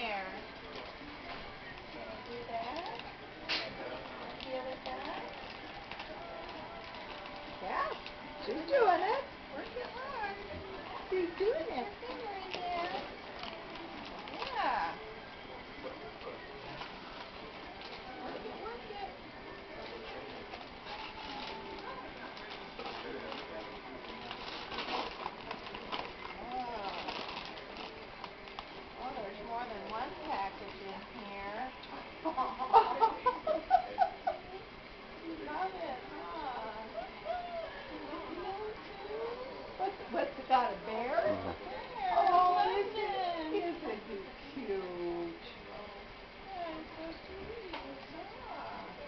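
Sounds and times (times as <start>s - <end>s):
room and equipment hiss: 0.0s - 49.0s
tissue paper rustling: 20.5s - 30.5s.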